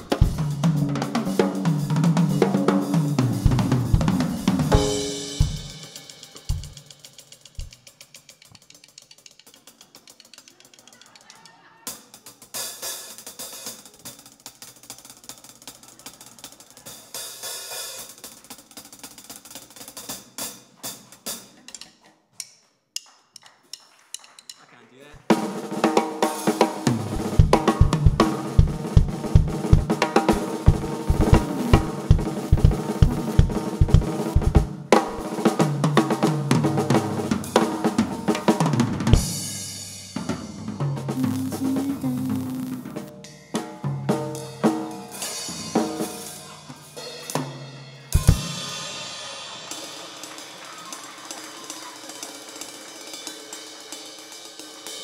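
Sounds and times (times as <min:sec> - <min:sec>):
cymbal and snare hits: 0:02.7 - 0:08.0, 0:26.3 - 0:35.6, 0:45.2 - 0:50.5
tom-tom fills and snare rolls: 0:25.2 - 0:35.5
bass drum pulse: 0:27.1 - 0:34.8.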